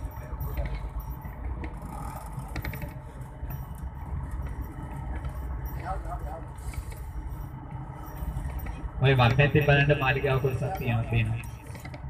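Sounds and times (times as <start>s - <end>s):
vehicle rattling: 0.0s - 12.0s
vehicle rumble on rough road: 0.0s - 12.0s.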